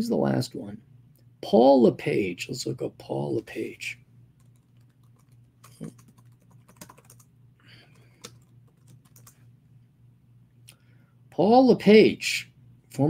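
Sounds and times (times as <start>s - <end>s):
typing on computer keyboard: 4.4s - 9.4s.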